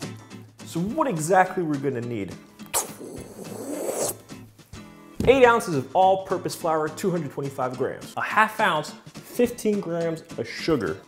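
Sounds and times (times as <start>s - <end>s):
light background music: 0.0s - 11.0s
chalkboard scraping and rubbing: 2.8s - 4.2s.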